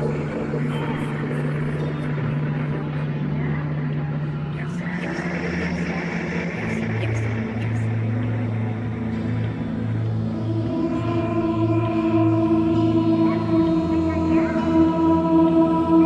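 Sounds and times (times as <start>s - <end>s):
dark droning music: 0.0s - 16.0s.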